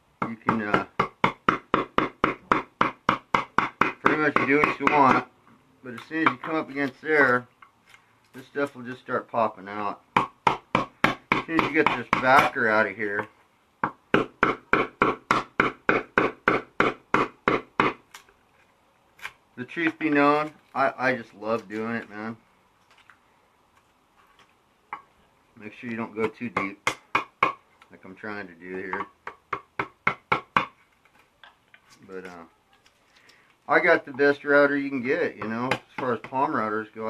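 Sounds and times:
hammer tapping wood chisel: 0:00.2 - 0:05.3, 0:06.1 - 0:06.8, 0:10.2 - 0:12.6, 0:13.2 - 0:18.0, 0:26.2 - 0:27.6, 0:28.7 - 0:30.8, 0:35.4 - 0:36.5.

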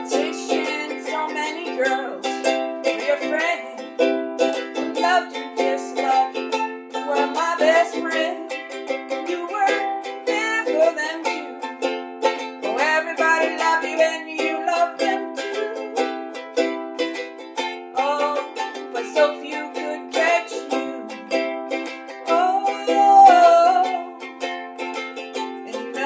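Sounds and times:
person singing: 0:00.0 - 0:26.0
ukulele strumming: 0:00.0 - 0:26.0.

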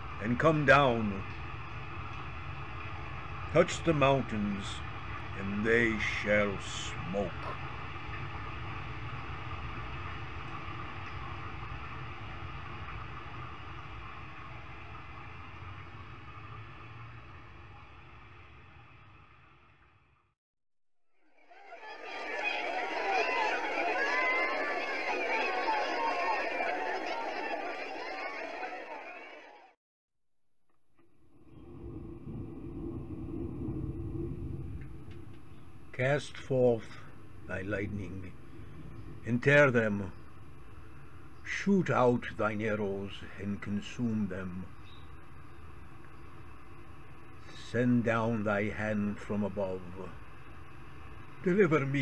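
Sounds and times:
noisy low rumble: 0:00.0 - 0:20.2, 0:31.3 - 0:52.0
low rumble of thunder: 0:31.4 - 0:41.6
hiss: 0:44.6 - 0:48.3.

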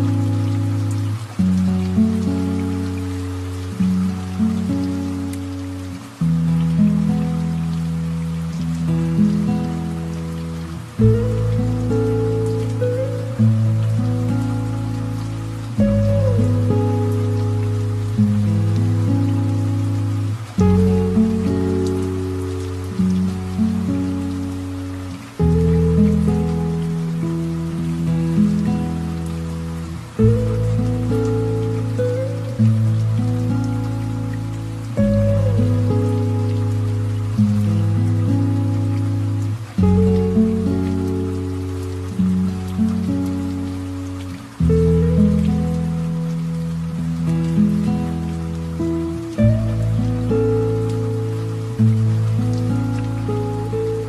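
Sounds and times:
light rain patter: 0:00.0 - 0:54.0.

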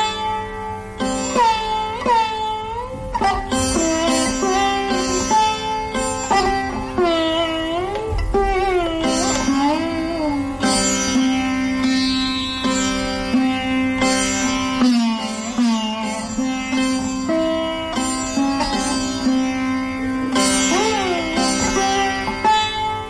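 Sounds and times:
sitar notes plucked: 0:00.0 - 0:23.0.

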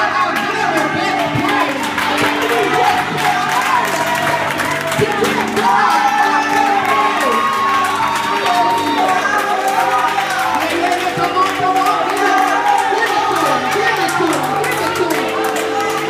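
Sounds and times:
congregation cheering: 0:00.0 - 0:16.0
keyboard chords: 0:00.0 - 0:16.0
people singing: 0:00.0 - 0:16.0.

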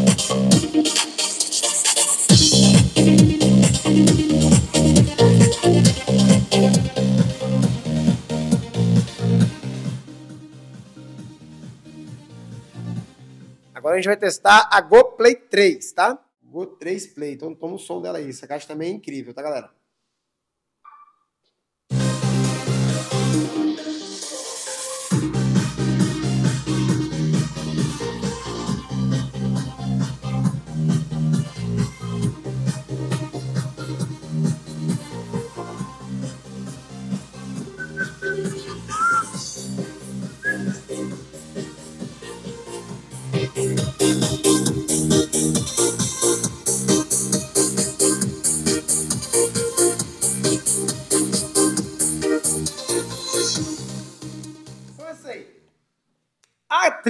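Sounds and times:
heavy pulsing bass beat: 0:00.0 - 0:00.8, 0:02.3 - 0:13.4, 0:25.1 - 0:37.8, 0:39.6 - 0:52.6
electronic dance music: 0:00.0 - 0:14.6, 0:21.9 - 0:55.4.

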